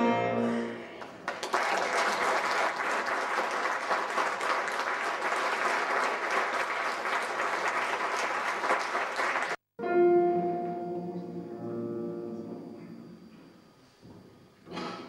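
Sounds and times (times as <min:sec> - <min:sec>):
audience applauding: 0:01.0 - 0:09.6.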